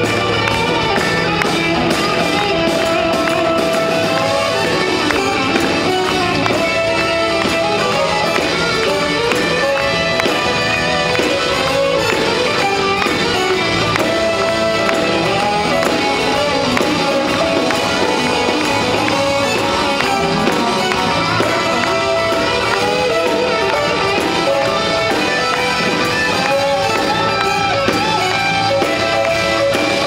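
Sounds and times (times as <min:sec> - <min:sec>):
brass section playing: 0:00.0 - 0:30.0
drum kit: 0:00.0 - 0:30.0
electric bass: 0:00.0 - 0:30.0.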